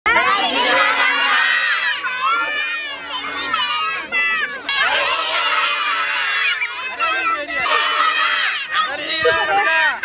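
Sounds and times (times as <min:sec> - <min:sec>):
children shouting and cheering: 0:00.1 - 0:10.0.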